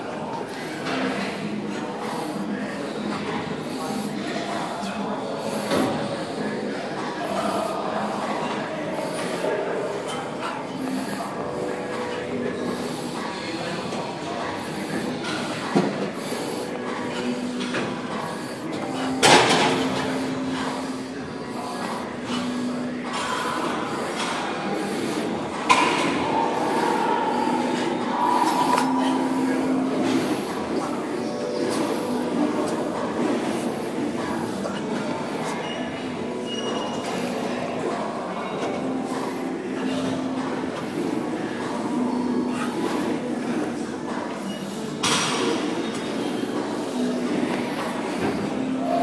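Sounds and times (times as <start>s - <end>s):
gym background noise: 0.0s - 49.0s
faint high tone: 26.2s - 30.0s.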